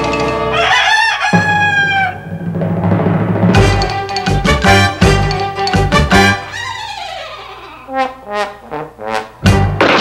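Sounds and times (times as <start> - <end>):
rooster crowing: 0.5 - 2.4.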